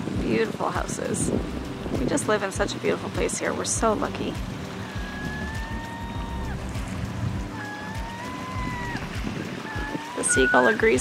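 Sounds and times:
gull calling: 0:04.7 - 0:06.8, 0:07.4 - 0:11.0.

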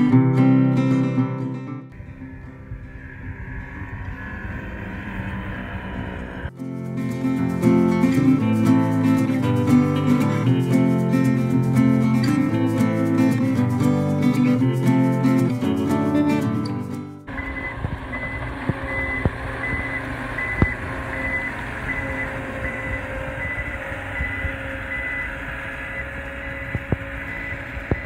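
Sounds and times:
guitar music: 0:00.0 - 0:18.8
diesel engine running: 0:01.9 - 0:28.0
reversing alarm beeping: 0:17.3 - 0:28.0.

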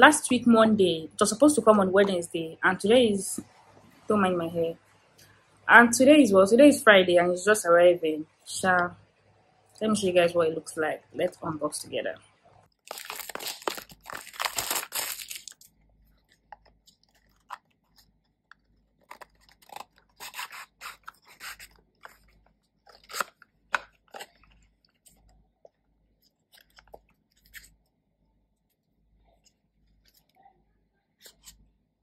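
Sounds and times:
packaging tearing: 0:12.8 - 0:15.7, 0:16.3 - 0:25.1
clicks and rustles of box: 0:12.9 - 0:25.4.

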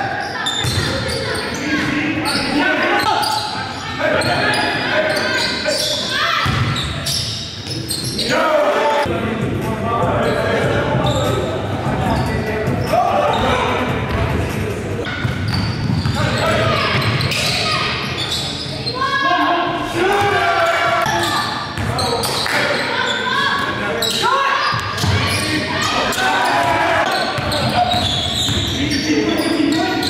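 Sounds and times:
players calling out: 0:15.0 - 0:30.0.

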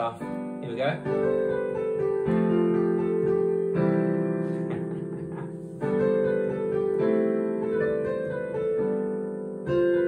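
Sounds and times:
digital piano chords: 0:00.0 - 0:10.0.

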